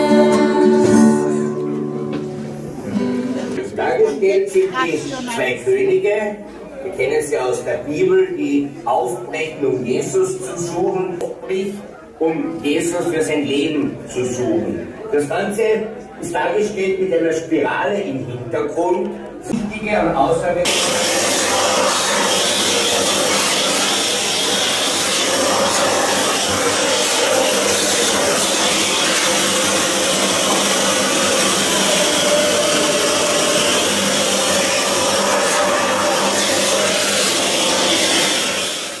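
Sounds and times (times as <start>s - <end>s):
rotary carving tool cutting wood: 20.7s - 39.0s.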